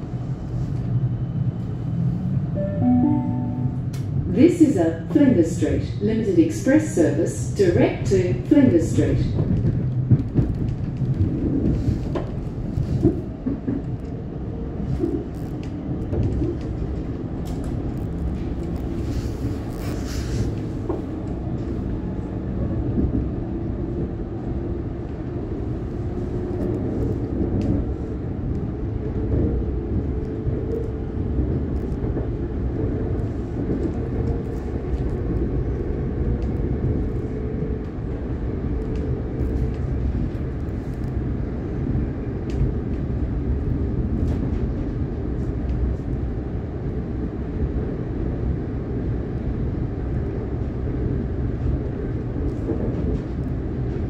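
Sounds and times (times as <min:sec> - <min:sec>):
train wheels rumbling on rails: 0:03.9 - 0:54.0.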